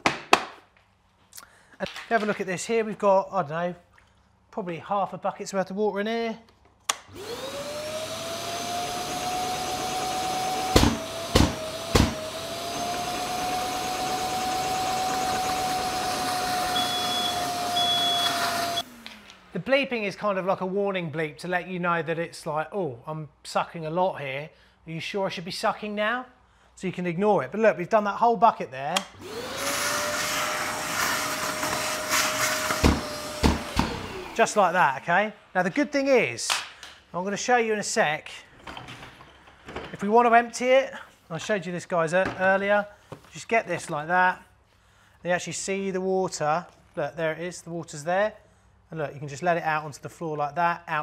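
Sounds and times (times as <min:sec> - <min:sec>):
wet vacuum whining: 0:07.1 - 0:19.6, 0:29.0 - 0:34.9
high warning bleeps: 0:16.8 - 0:18.3.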